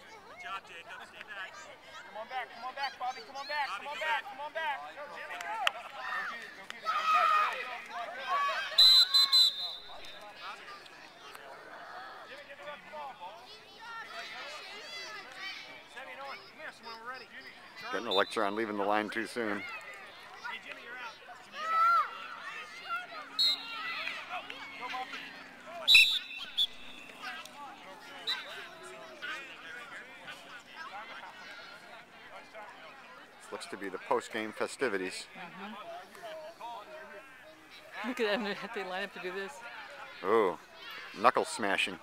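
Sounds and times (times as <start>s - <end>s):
voices chattering: 0.0s - 42.0s
onlookers shouting: 5.2s - 10.7s, 19.0s - 32.0s
referee's whistle blasts: 8.7s - 10.2s, 23.3s - 23.9s, 25.9s - 27.2s.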